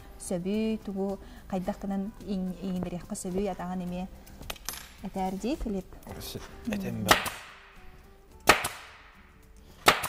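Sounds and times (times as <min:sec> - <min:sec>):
sharp echoing cracks: 0:07.1 - 0:07.7, 0:08.5 - 0:09.2.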